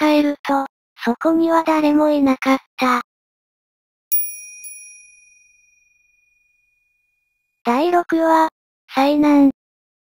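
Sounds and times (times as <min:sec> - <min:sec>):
high-pitched bell chime: 0:04.1 - 0:07.1.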